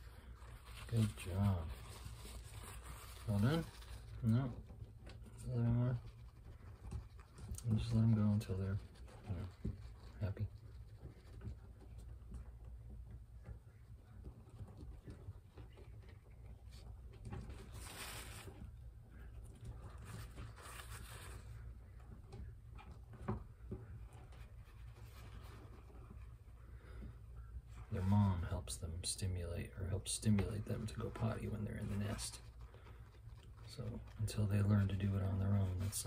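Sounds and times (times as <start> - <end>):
paper towel rustling: 0.0 - 12.7, 14.2 - 22.1, 23.9 - 36.0
low room hum: 0.0 - 36.0.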